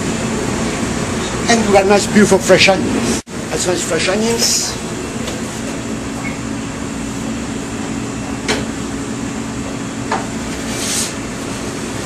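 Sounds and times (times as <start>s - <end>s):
kitchen machinery hum: 0.0s - 12.0s.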